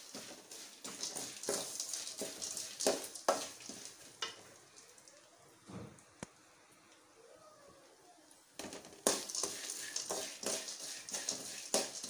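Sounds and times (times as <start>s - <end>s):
metal ladle scraping rice in a pan: 0.0s - 3.9s, 9.0s - 12.0s
seeds frying: 0.0s - 5.5s, 8.6s - 12.0s.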